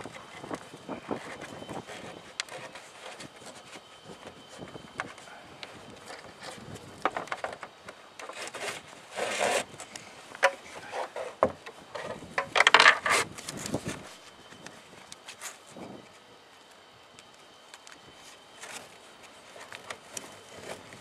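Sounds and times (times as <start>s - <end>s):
strap scraping against plastic: 6.1s - 9.7s.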